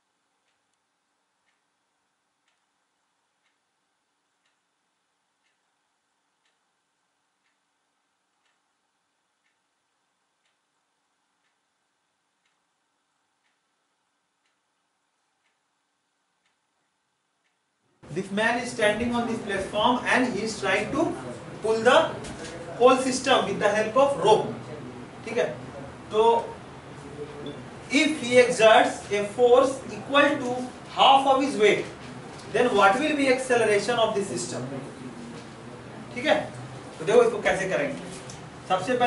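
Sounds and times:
faint ticking: 0.0 - 22.2.

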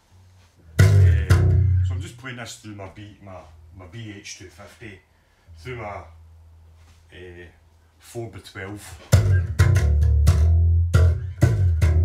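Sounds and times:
electric bass guitar notes: 0.6 - 2.2, 9.0 - 12.0.

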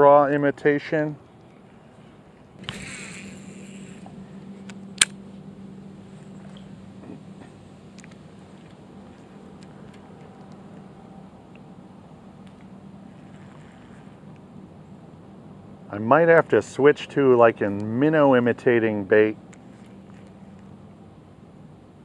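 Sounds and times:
steady low hum: 0.0 - 22.0
fishing reel click: 2.6 - 4.0.

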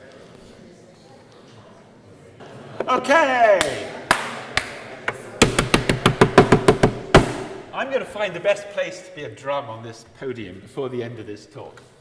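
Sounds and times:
tapping on wooden podium: 4.6 - 7.6.

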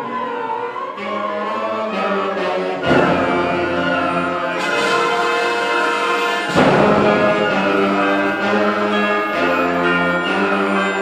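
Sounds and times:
symphonic band playing chords: 0.0 - 11.0.

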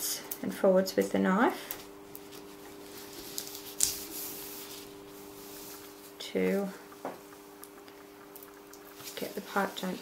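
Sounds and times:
small ticks and clicks: 5.7 - 10.0.

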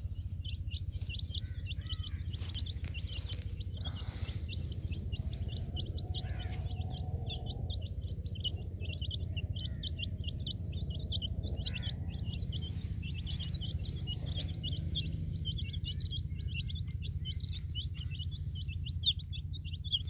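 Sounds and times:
baby chicks peeping: 0.0 - 20.0
low rumble: 0.0 - 20.0.

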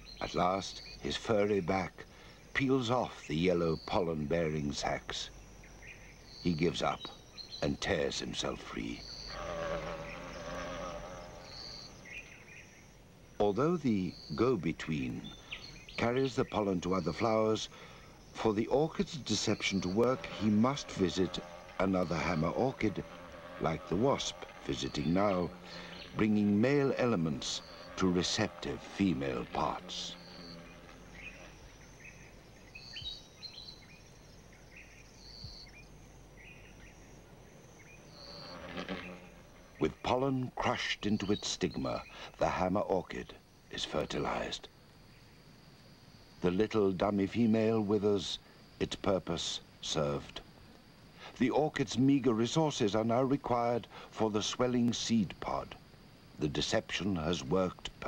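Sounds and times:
low steady hiss: 0.0 - 58.0
wasp wings buzzing: 8.4 - 13.4, 14.0 - 39.8
small animals chirping: 18.4 - 33.8.

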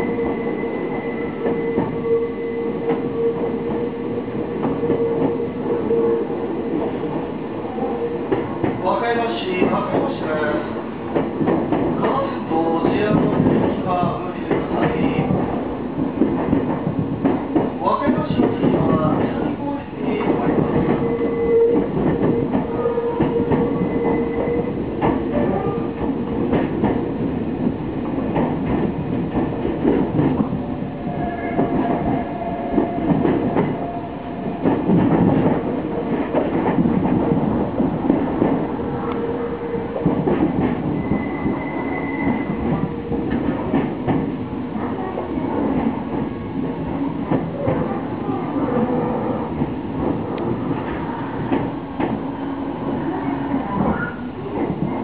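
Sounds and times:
electric train rumble: 0.0 - 55.0
faint wheel squeal: 41.0 - 42.6.

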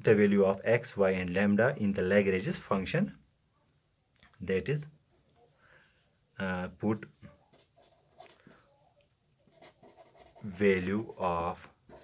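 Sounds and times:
pen scratching on paper: 7.5 - 8.5, 9.4 - 11.2.

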